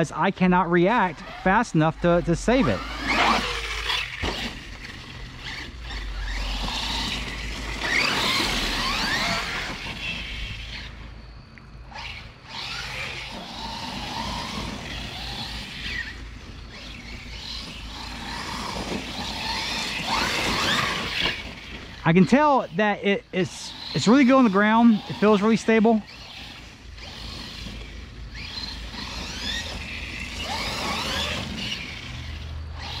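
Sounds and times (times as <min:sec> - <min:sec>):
electric motor whining: 0:00.0 - 0:33.0.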